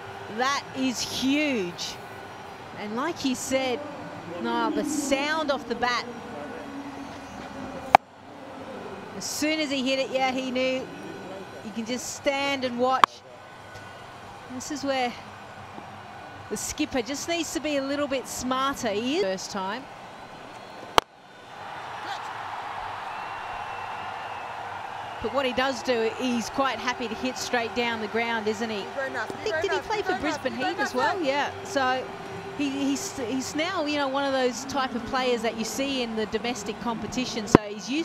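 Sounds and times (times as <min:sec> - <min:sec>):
steady background noise: 0:00.0 - 0:38.0.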